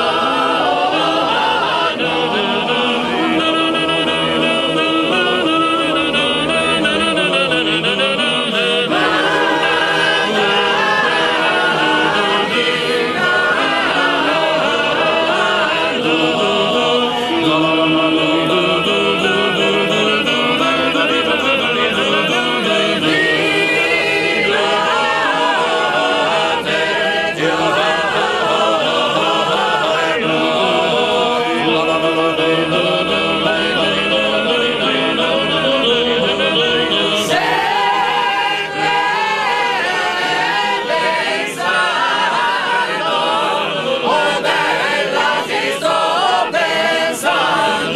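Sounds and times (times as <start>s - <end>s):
male chorus singing a cappella: 0.0s - 47.9s.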